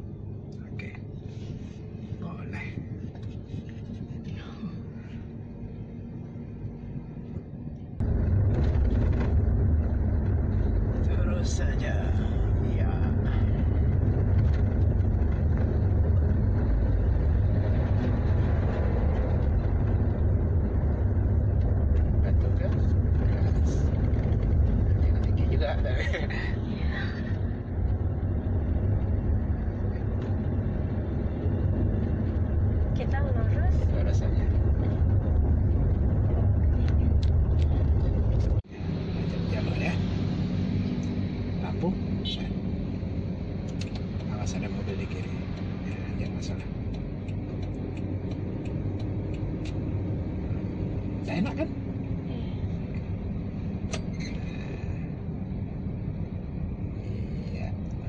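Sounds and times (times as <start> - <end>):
car interior rumble: 0.0 - 58.0.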